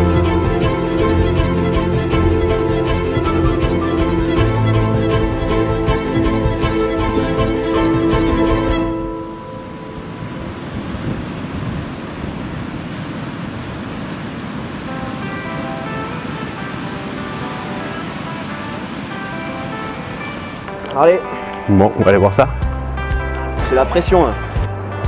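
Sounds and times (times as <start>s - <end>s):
steady rushing noise: 0.0s - 22.0s.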